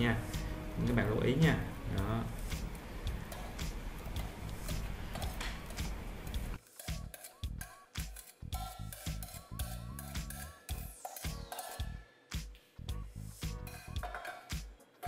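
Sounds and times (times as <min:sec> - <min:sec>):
background music with spaced notes: 0:00.0 - 0:15.0.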